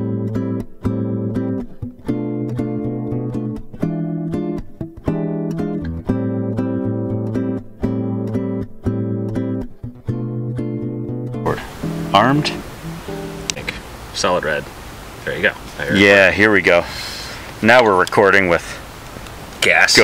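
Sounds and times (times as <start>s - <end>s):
acoustic guitar strumming chords: 0.0s - 14.0s.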